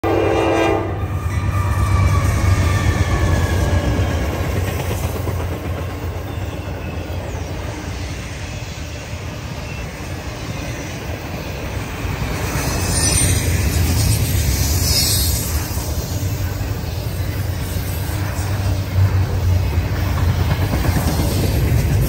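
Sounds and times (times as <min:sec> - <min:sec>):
locomotive horn: 0:00.0 - 0:03.8
train cars clattering: 0:01.1 - 0:22.0.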